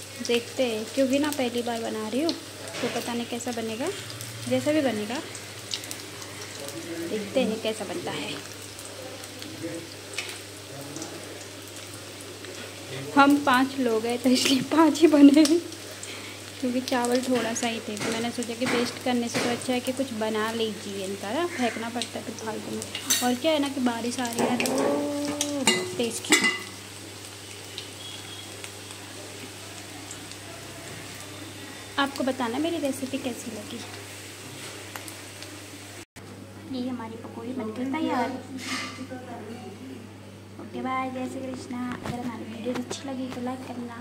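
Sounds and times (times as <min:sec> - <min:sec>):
oil crackles: 0:00.0 - 0:35.8, 0:41.0 - 0:44.0
batter sizzling in hot oil: 0:00.0 - 0:36.1.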